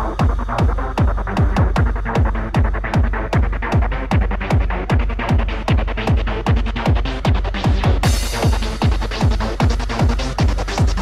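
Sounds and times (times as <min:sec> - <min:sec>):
hi-hats: 0:00.0 - 0:11.0
kick drum: 0:00.0 - 0:11.0.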